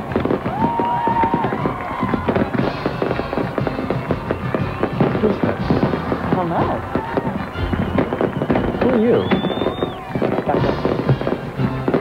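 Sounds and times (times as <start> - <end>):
firework whistling: 0.0 - 12.0
fireworks crackling and banging: 0.0 - 12.0.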